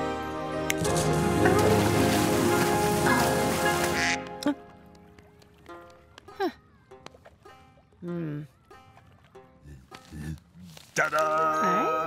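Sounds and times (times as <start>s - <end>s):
cartoon background music: 0.0s - 4.9s
duck quacking: 3.1s - 4.4s.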